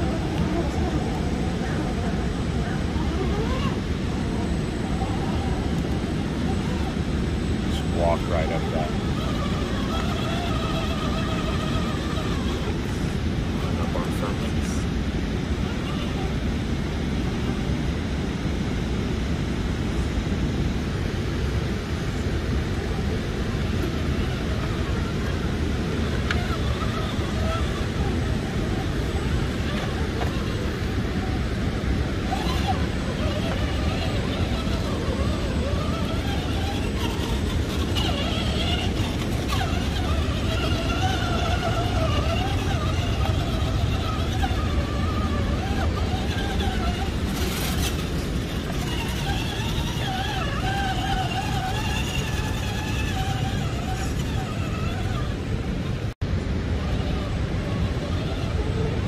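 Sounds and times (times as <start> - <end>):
faint indistinct voices: 0.0 - 14.9.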